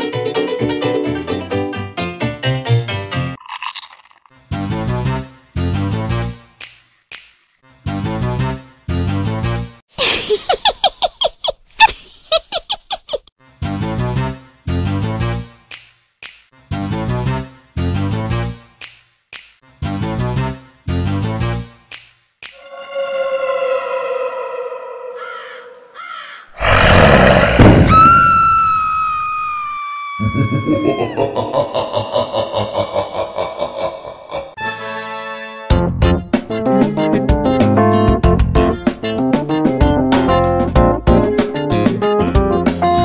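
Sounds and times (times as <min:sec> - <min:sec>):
high cackling laugh: 0:10.0 - 0:13.3, 0:30.2 - 0:34.6
high tone sliding downward: 0:22.6 - 0:25.4
loud noisy burst: 0:26.6 - 0:28.2.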